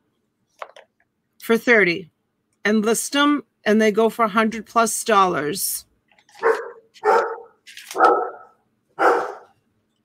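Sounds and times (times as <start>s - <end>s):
dog barking: 6.4s - 9.6s.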